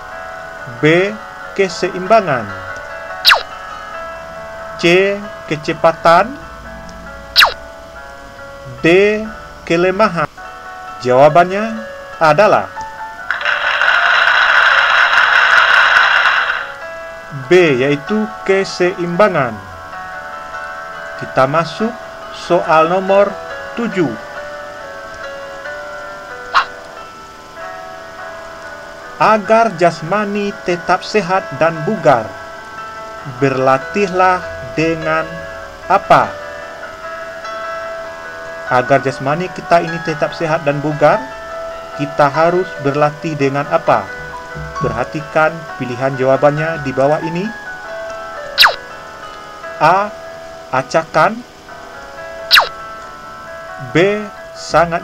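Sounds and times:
light background music: 0:00.0 - 0:55.0
whistle-like tone sliding down: 0:03.3 - 0:03.5, 0:07.4 - 0:07.6, 0:48.6 - 0:48.8, 0:52.5 - 0:52.8.

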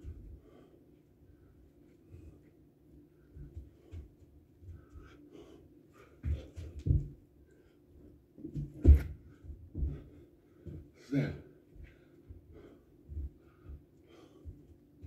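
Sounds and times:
thuds on rubber mat: 0:08.5 - 0:09.2
heavy breathing: 0:09.3 - 0:14.8.

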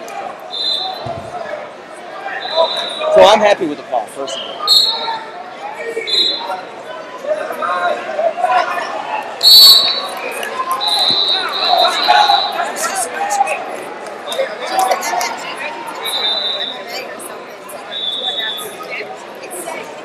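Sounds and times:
murmur of voices: 0:00.0 - 0:20.0
referee whistle blasts: 0:00.5 - 0:01.3, 0:02.3 - 0:03.2, 0:04.3 - 0:05.2, 0:06.0 - 0:06.6, 0:09.4 - 0:12.8, 0:16.0 - 0:17.0, 0:17.9 - 0:18.8.

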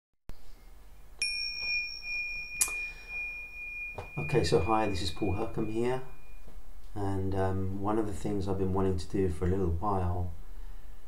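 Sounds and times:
sharp bright strike: 0:01.2 - 0:06.5
bell ringing: 0:01.2 - 0:06.6.

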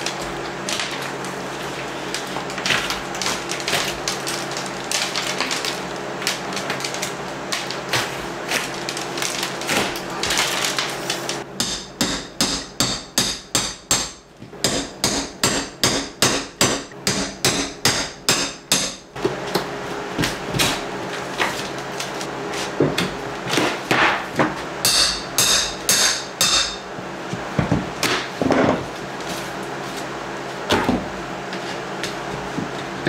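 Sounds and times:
drywall crackling and scraping: 0:00.0 - 0:11.5, 0:19.4 - 0:24.7, 0:27.2 - 0:33.0
hammer striking metal tool: 0:11.6 - 0:19.0, 0:24.8 - 0:26.9.

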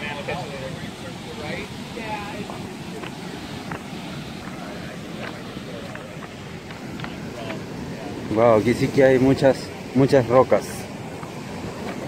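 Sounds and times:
surf breaking on a beach: 0:00.0 - 0:12.0.

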